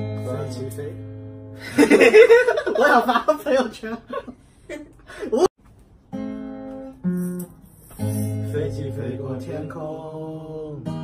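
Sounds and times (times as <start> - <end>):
acoustic guitar strumming: 0.0 - 1.6, 6.0 - 11.0.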